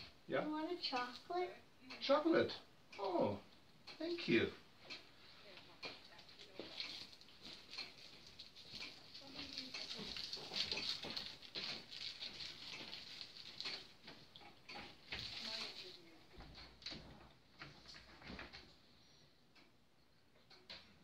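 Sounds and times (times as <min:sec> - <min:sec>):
chocolate wrapper crinkling: 0:06.4 - 0:13.9.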